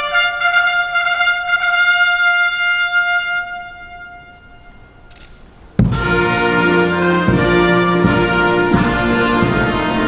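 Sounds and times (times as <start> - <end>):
brass band holding final note: 5.8 - 10.0.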